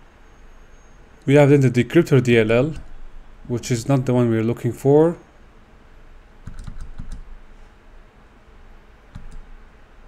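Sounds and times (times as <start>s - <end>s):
computer keyboard keystrokes: 6.4s - 7.3s, 9.1s - 9.5s.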